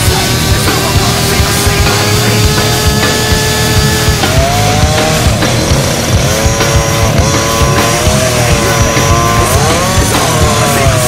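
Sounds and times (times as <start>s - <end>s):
model car engine revving: 0.0s - 11.0s
rock music: 0.0s - 11.0s.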